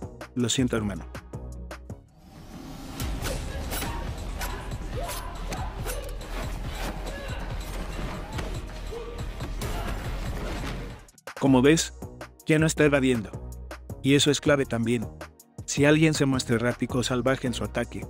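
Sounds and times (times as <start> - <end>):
soundtrack music: 0.0 - 18.0.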